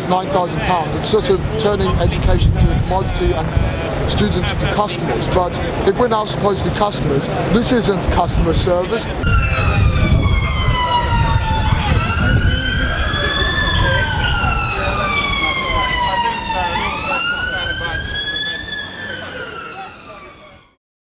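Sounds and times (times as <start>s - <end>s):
low street rumble: 0.0s - 20.8s
emergency siren wailing: 9.1s - 20.8s.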